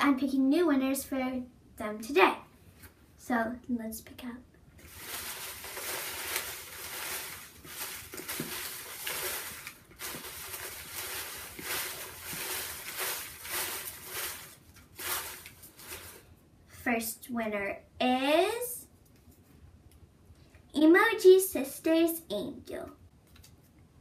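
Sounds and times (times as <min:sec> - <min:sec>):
paper slips rustling in plastic bowl: 0:04.8 - 0:16.3.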